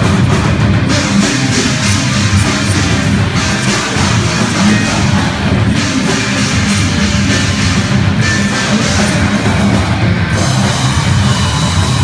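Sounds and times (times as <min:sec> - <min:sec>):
live heavy rock band: 0:00.0 - 0:12.0.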